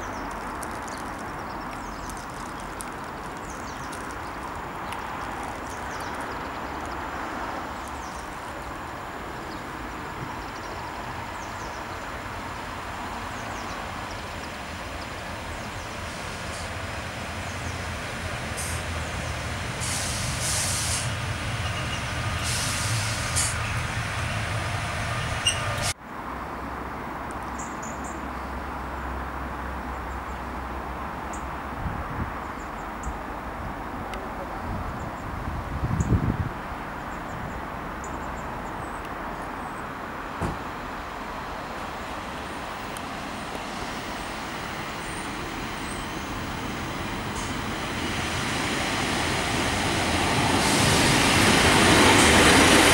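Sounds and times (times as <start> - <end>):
train approaching with low hum: 3.1 - 26.0, 36.5 - 52.9
diesel train engine running: 8.4 - 26.0, 41.2 - 52.9.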